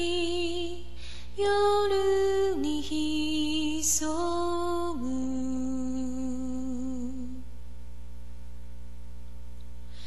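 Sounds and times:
woman singing long note: 0.0s - 7.4s.

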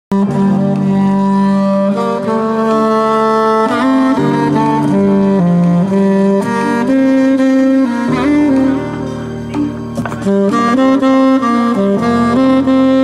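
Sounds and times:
saxophone playing slow melody: 0.1s - 13.0s.

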